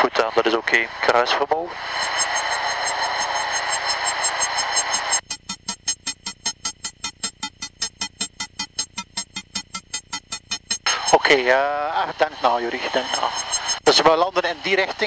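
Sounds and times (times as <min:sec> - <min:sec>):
rapid electronic pulsing: 0:02.0 - 0:11.2, 0:13.0 - 0:14.0.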